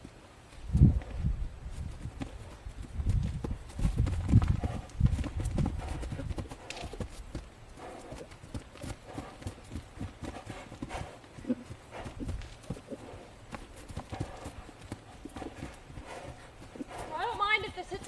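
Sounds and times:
horse hooves thudding on grass: 0:00.0 - 0:18.0.

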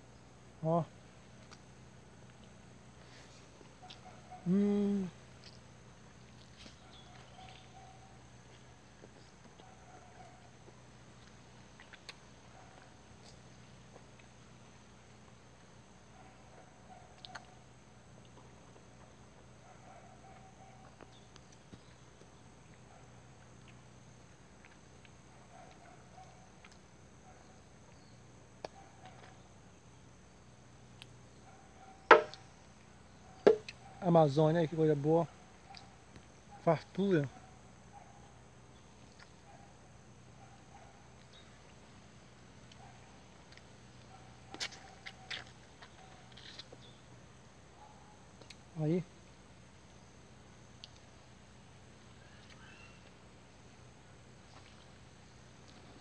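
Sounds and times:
faint hum: 0:00.0 - 0:56.0.

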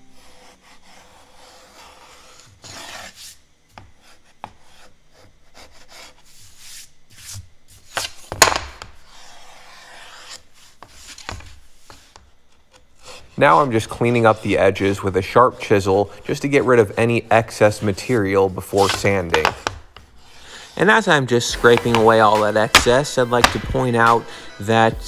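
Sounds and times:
chisel scraping wood: 0:09.1 - 0:11.3.

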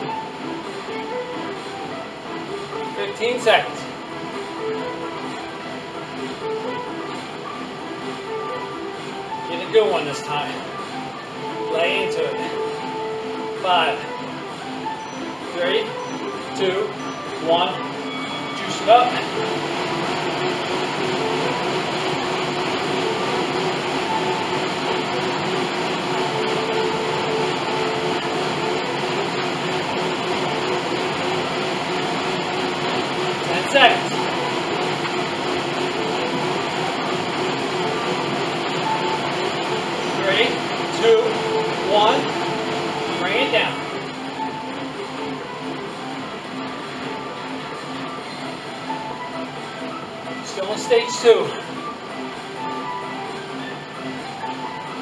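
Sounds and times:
exercise machine fan whirring: 0:00.0 - 0:55.0.

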